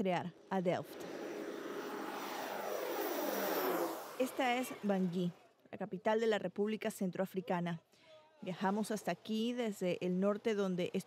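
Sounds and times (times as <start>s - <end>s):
turboprop aircraft passing: 0.0s - 5.4s.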